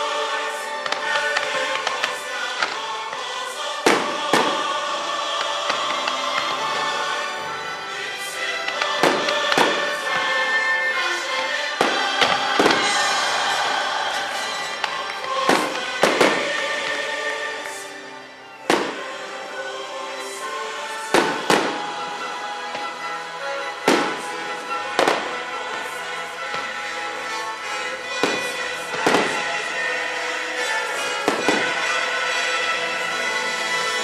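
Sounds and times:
music: 0.0s - 34.0s
fireworks bursting in sharp bangs: 0.7s - 6.8s, 8.2s - 17.0s, 18.6s - 19.3s, 21.0s - 22.9s, 23.7s - 32.7s.

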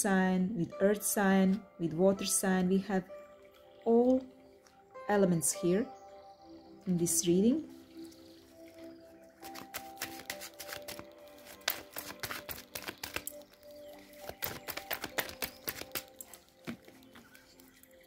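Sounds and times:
soft background music: 0.0s - 18.0s
cards being shuffled: 9.4s - 17.3s.

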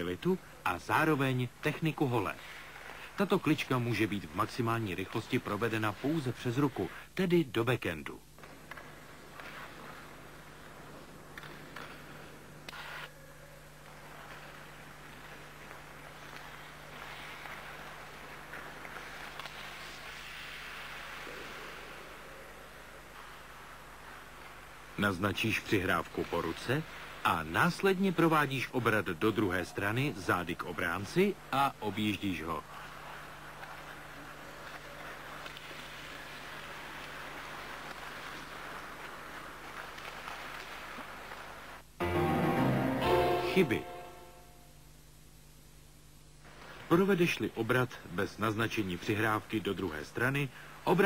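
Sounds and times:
steady low hum: 0.0s - 51.0s
skate blades scraping ice: 8.4s - 13.2s, 13.9s - 28.4s, 30.8s - 41.7s
low hum: 41.8s - 46.4s
steady even noise: 41.9s - 45.4s
instrumental music: 42.0s - 44.5s.

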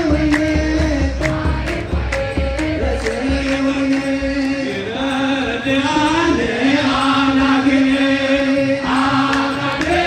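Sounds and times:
men chanting a hymn: 0.0s - 10.0s.

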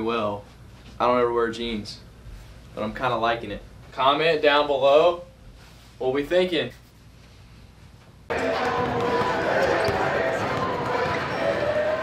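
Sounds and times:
chatter of many voices: 8.3s - 12.0s
basketballs bouncing on hardwood: 8.4s - 11.5s.

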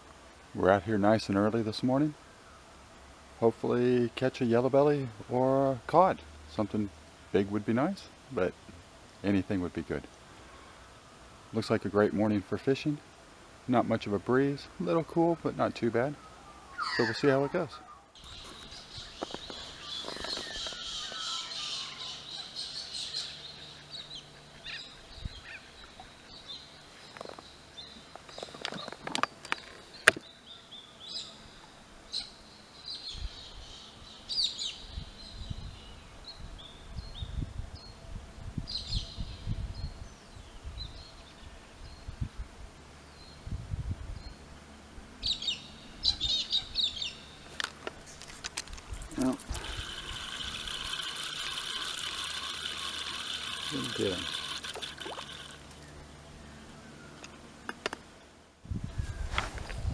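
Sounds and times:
birds calling and chirping: 15.6s - 38.1s, 45.2s - 59.4s.

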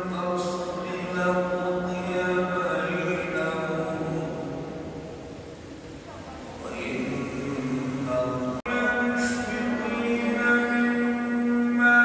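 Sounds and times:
man chanting with hall echo: 0.0s - 5.4s, 6.5s - 12.0s.

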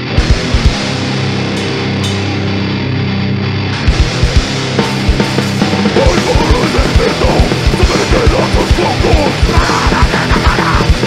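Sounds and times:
distorted guitar chord: 0.0s - 11.0s
cymbal crashes: 1.4s - 2.9s.

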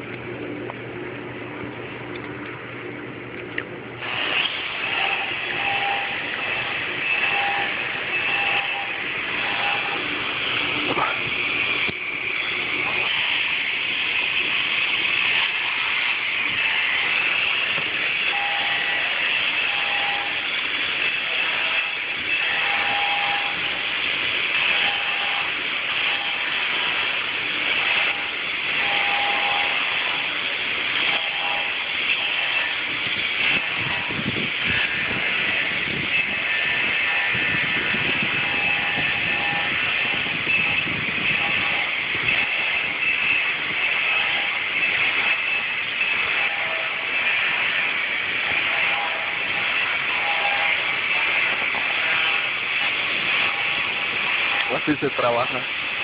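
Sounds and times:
power tool hissing on stone: 4.0s - 56.0s.

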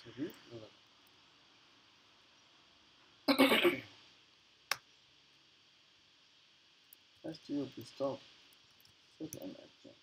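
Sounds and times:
person clearing throat: 3.3s - 3.9s.

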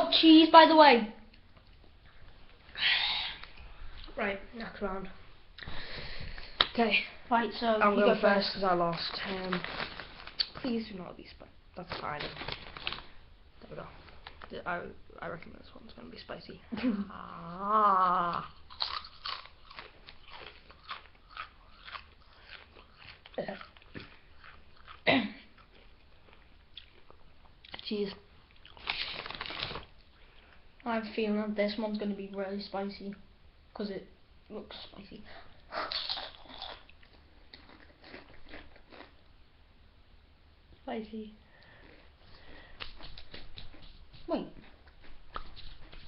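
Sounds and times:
person crunching chips: 9.0s - 10.6s, 12.2s - 13.1s, 18.2s - 25.0s, 28.5s - 30.0s, 35.9s - 39.2s.

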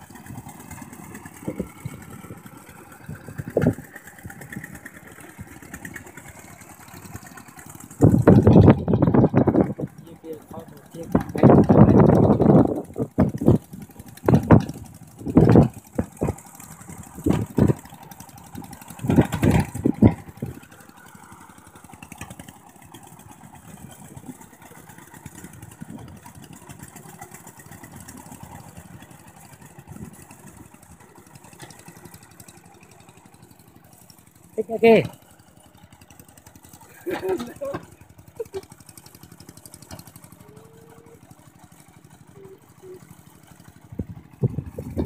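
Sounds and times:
distant diesel engine running: 0.0s - 45.0s.

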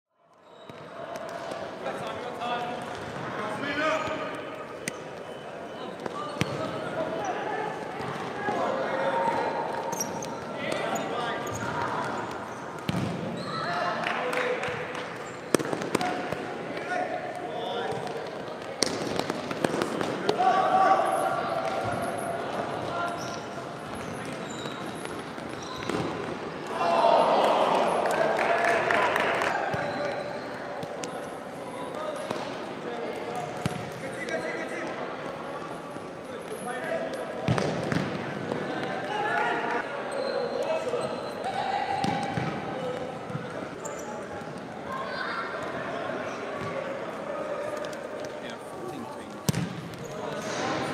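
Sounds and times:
chatter of players and spectators: 0.2s - 50.9s
ball kick thuds echoing: 12.8s - 13.4s, 37.5s - 38.2s, 42.0s - 42.7s, 49.4s - 50.0s
players shouting: 20.0s - 23.3s, 26.6s - 31.1s
ball kicked on hard court: 49.5s - 49.9s.

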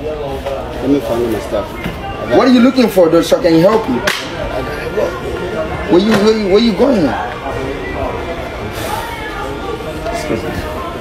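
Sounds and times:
low background murmur: 0.0s - 11.0s.

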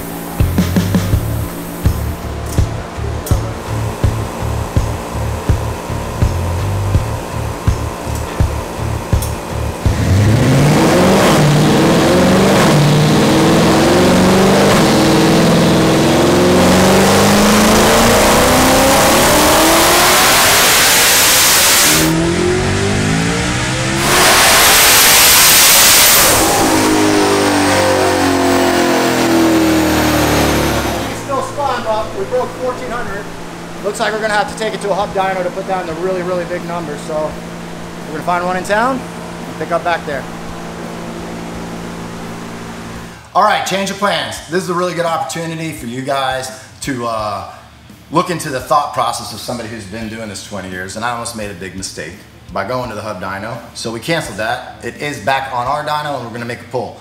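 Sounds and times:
car engine revving: 0.0s - 43.3s.

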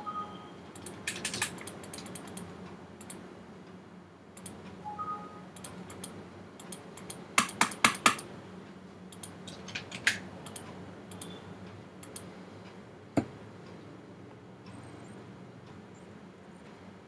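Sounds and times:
two-note computer beep: 0.0s - 0.6s, 4.9s - 5.5s
keyboard and mouse clicking: 0.8s - 3.2s, 4.4s - 4.6s, 5.6s - 8.3s, 9.1s - 11.4s, 12.0s - 12.3s.

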